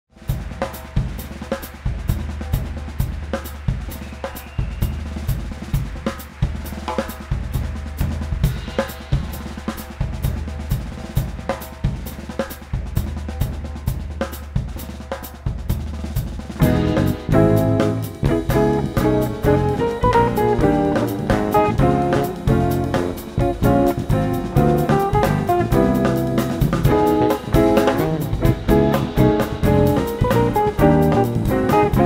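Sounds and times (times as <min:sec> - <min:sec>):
drum strikes: 0:00.3 - 0:32.0.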